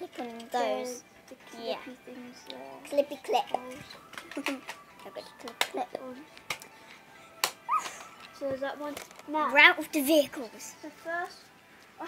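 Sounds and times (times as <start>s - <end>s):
plastic toy parts clicking: 3.9s - 4.8s, 5.4s - 5.8s, 6.4s - 6.7s, 9.0s - 9.3s.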